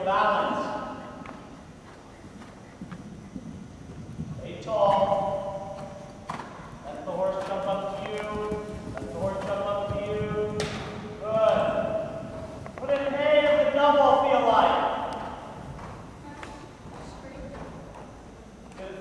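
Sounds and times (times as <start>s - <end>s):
horse hoofbeats cantering: 1.2s - 13.6s
sharp knocks: 10.3s - 11.6s.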